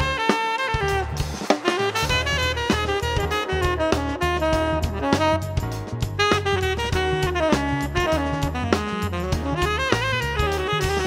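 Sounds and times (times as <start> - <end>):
drum kit with cymbals: 0.0 - 11.0
saxophone playing jazz: 0.0 - 11.0
steady bass line: 0.0 - 11.0.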